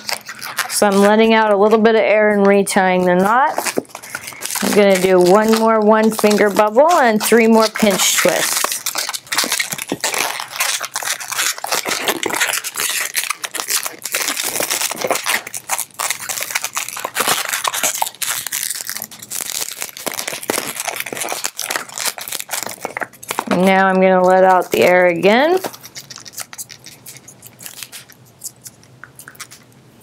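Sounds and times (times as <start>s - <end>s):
balloon rubbing and crackling: 0.0s - 29.7s.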